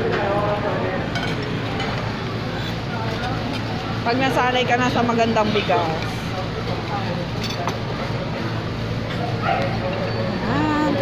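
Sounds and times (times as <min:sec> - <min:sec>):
faint scattered voices: 0:00.0 - 0:11.0.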